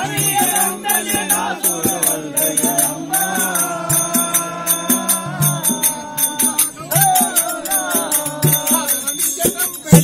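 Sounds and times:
metallic jingling beat: 0:00.0 - 0:10.0.

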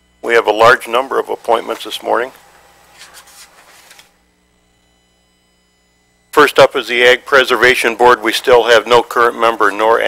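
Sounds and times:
paper rustling and scratching: 0:02.9 - 0:04.1.

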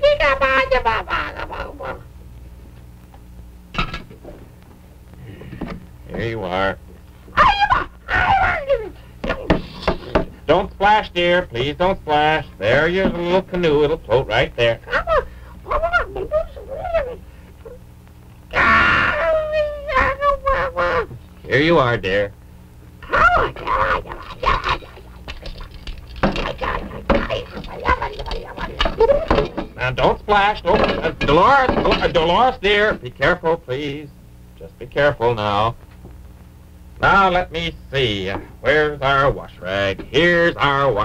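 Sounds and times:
person voicing creature cries: 0:00.0 - 0:02.1, 0:07.3 - 0:10.0, 0:18.5 - 0:21.2, 0:23.0 - 0:29.7.

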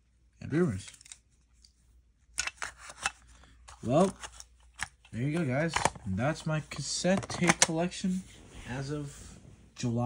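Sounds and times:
plastic cassette case clicking: 0:05.7 - 0:06.0, 0:07.1 - 0:07.8.

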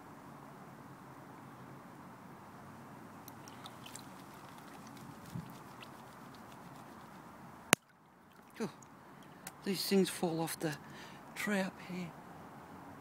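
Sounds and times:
water sloshing: 0:03.2 - 0:09.3
gravel clicking: 0:03.3 - 0:08.9.

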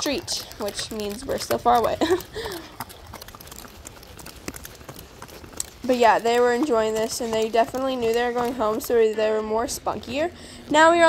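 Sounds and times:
horse hooves clopping on road: 0:00.0 - 0:11.0.

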